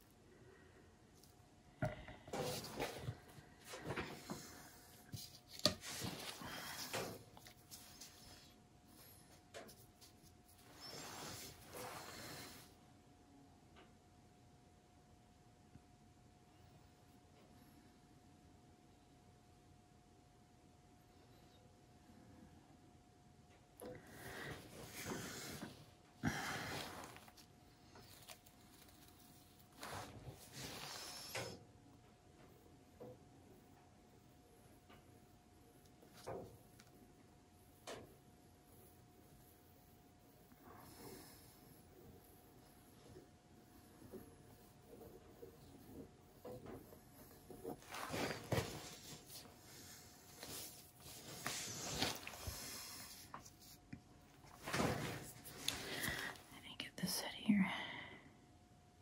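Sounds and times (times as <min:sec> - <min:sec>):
faint steady hum: 0:00.0 - 0:59.0
soft whispering: 0:55.6 - 0:58.4.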